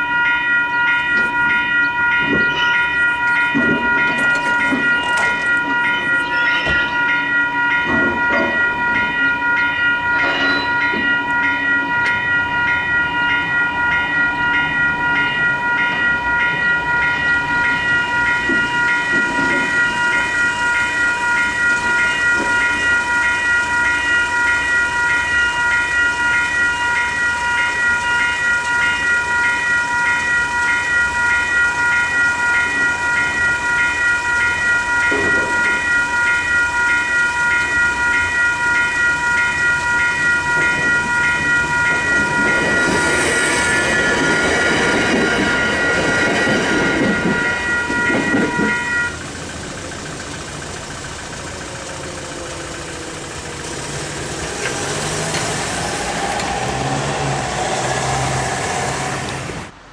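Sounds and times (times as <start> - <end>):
electronic crossing bell ringing: 0.0 - 59.7.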